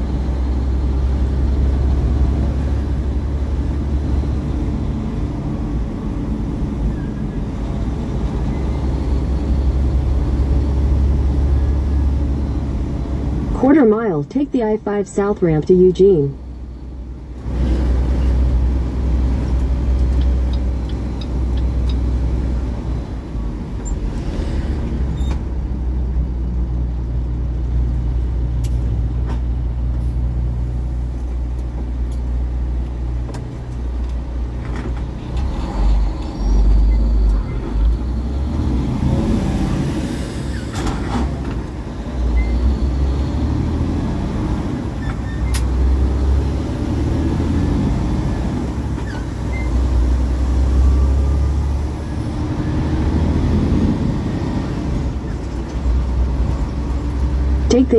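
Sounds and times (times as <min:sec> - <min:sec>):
road rumble: 0:00.0 - 0:57.9
truck engine drone: 0:00.0 - 0:57.9.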